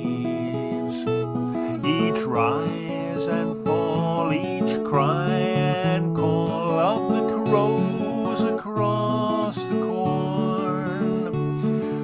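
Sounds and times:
acoustic guitar strumming chords: 0.0 - 12.0.

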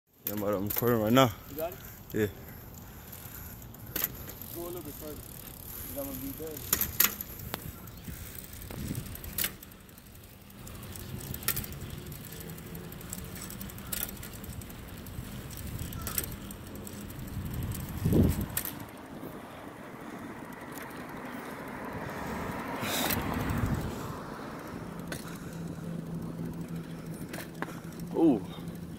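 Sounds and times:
bike rolling over asphalt: 0.1 - 28.9.

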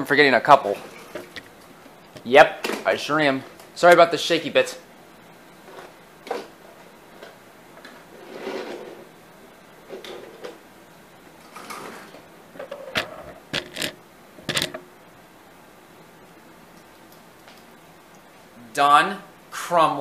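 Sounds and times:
camera handling rustles: 1.0 - 1.5.

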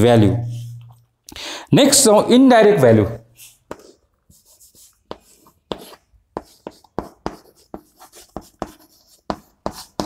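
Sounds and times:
chalk scratching on chalkboard: 3.4 - 10.0
chalk tap: 3.4 - 10.0.

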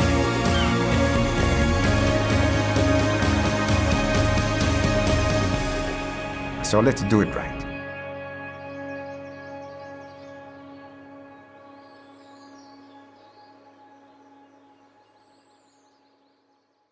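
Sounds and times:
ambient music sustained chord: 0.0 - 16.7.

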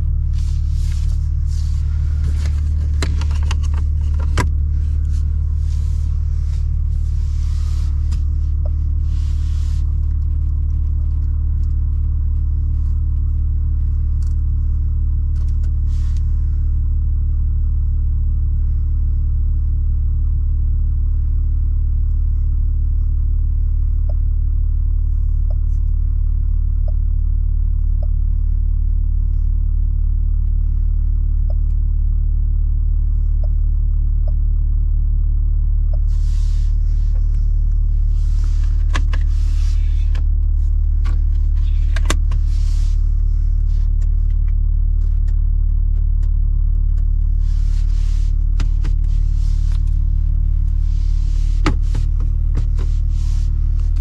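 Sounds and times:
car engine idling hum: 0.0 - 54.0
rustles and clicks of compartment: 0.1 - 14.4, 36.1 - 54.0.

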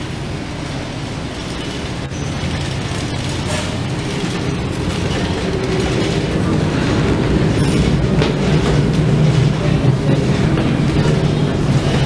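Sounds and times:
ferry engines droning: 0.0 - 12.0.

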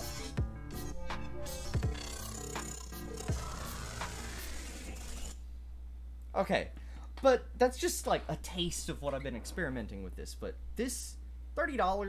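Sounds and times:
swirling electronic texture: 0.0 - 5.4
steady low hum: 1.7 - 12.0.

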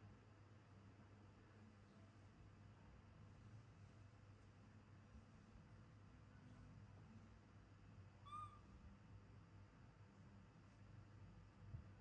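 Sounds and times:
baby monkey coo call: 8.2 - 8.7.

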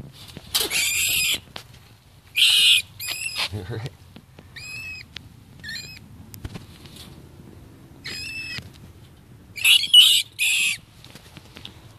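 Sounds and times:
harsh rat screeches: 0.6 - 1.4, 2.3 - 3.6, 4.6 - 6.0, 8.0 - 8.6, 9.6 - 10.8
rat squealing: 0.6 - 1.4, 2.3 - 3.6, 4.6 - 6.1, 8.0 - 8.6, 9.6 - 10.8.

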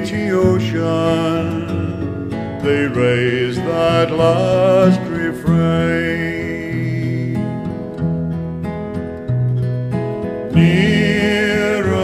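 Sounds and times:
person singing: 0.0 - 7.6, 10.5 - 12.0
acoustic guitar: 0.0 - 12.0.

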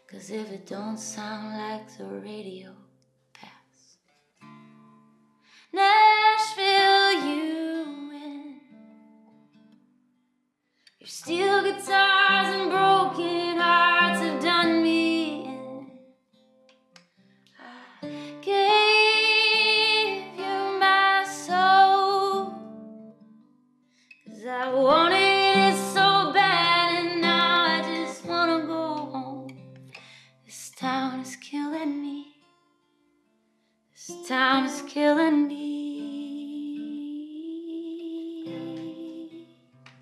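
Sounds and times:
woman singing: 0.0 - 2.8, 5.6 - 8.7, 11.0 - 16.0, 17.6 - 22.7, 24.3 - 29.6, 30.5 - 32.4, 34.0 - 39.6
acoustic guitar: 0.0 - 40.0.

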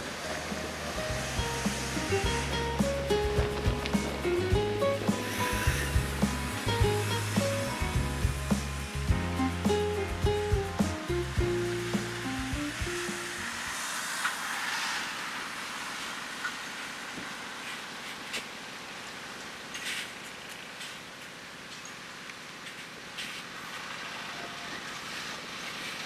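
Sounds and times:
background music with beat: 0.5 - 13.4.

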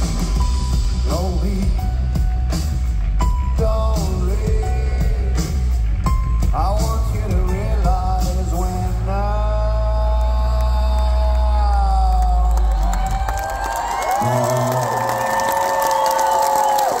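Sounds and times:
heavy bass: 0.0 - 15.3
crowd cheering and whistling: 10.1 - 17.0.

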